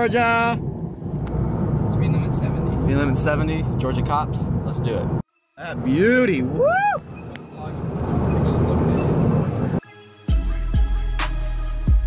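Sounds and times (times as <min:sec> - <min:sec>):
road and wind noise from car: 0:00.0 - 0:09.8.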